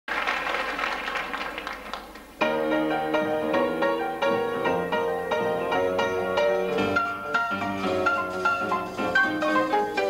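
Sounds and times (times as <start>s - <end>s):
crowd applause: 0.1s - 2.4s.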